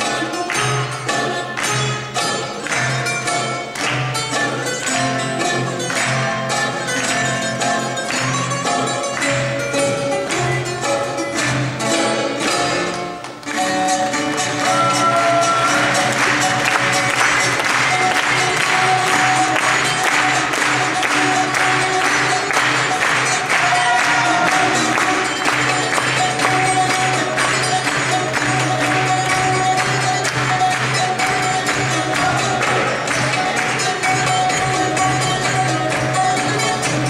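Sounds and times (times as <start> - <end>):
folk dance music: 0.0 - 37.0.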